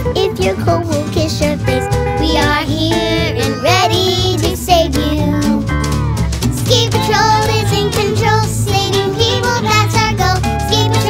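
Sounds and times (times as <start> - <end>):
song with vocals and bass: 0.0 - 11.0.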